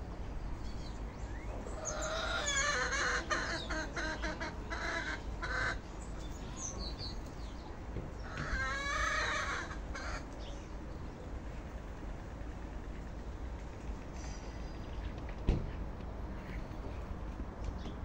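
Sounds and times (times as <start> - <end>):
birds calling: 0.4 - 13.4.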